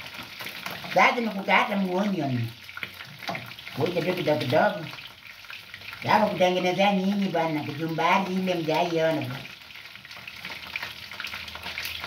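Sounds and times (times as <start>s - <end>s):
food frying sizzle: 0.0s - 12.0s.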